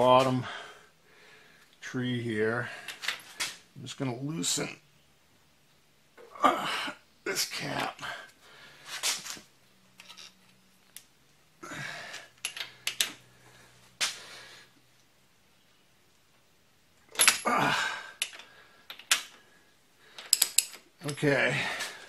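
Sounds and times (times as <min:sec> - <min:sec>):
wrench clicking on metal: 0:20.2 - 0:21.2.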